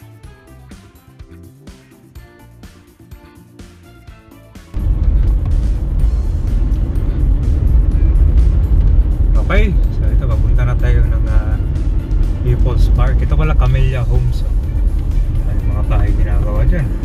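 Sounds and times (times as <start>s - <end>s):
car interior road rumble: 4.8s - 17.0s.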